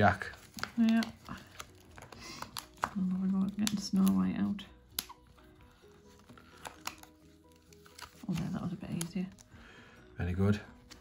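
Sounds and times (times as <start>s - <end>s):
faint background music: 0.0s - 11.0s
plastic packaging clicks: 0.1s - 5.4s, 6.3s - 9.4s.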